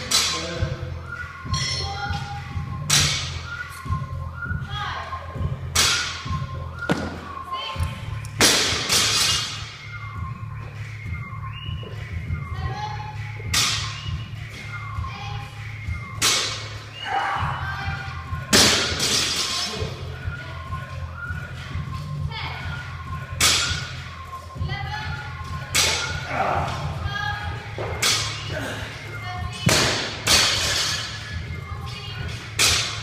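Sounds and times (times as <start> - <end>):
background music: 0.0 - 33.0.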